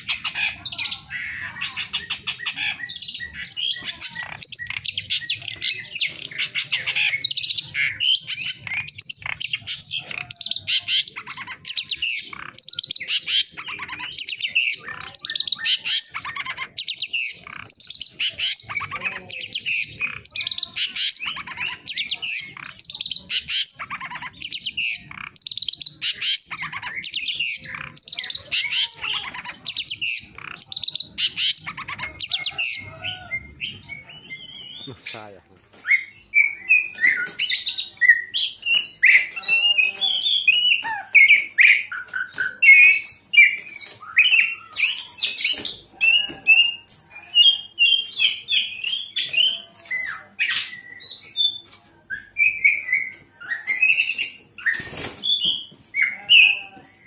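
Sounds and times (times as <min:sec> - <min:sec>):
songbird singing: 0:00.0 - 0:57.0.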